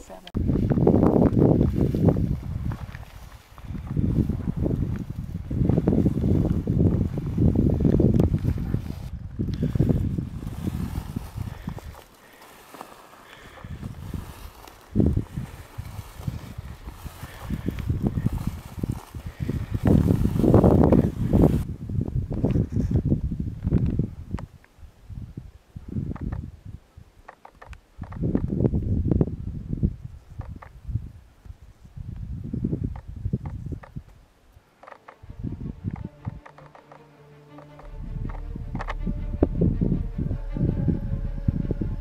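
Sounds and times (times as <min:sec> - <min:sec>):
wind buffeting microphone: 0:00.3 - 0:12.1, 0:13.3 - 0:27.1, 0:27.7 - 0:34.2, 0:35.1 - 0:36.5, 0:37.8 - 0:42.0.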